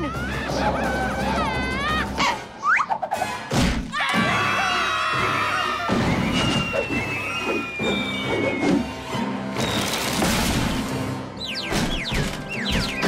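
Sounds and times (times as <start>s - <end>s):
descending whistle: 5.7s - 9.9s.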